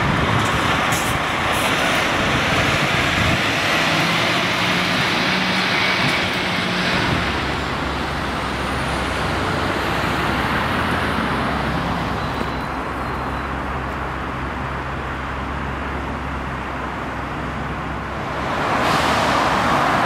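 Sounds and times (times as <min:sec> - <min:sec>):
road traffic passing: 0:00.0 - 0:20.0.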